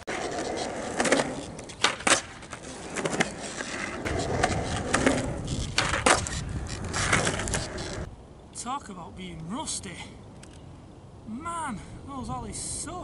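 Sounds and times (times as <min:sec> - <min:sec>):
skateboard wheels rolling on concrete: 0:00.0 - 0:08.7
skateboard wooden clacks: 0:00.1 - 0:08.1.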